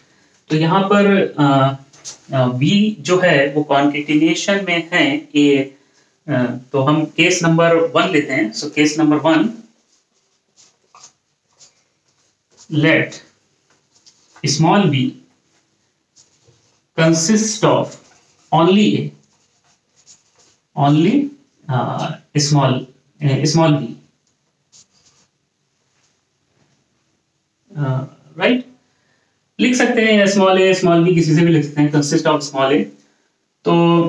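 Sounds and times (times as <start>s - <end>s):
marker squeaking on whiteboard: 7.3s - 13.0s, 16.2s - 20.7s, 24.7s - 25.4s.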